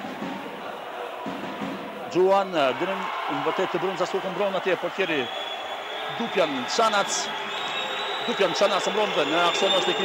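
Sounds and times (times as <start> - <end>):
crowd chanting and singing: 0.0 - 10.0.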